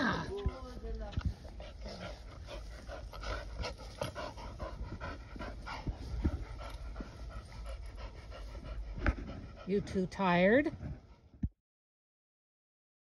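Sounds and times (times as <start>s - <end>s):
dog panting: 0.0s - 11.4s.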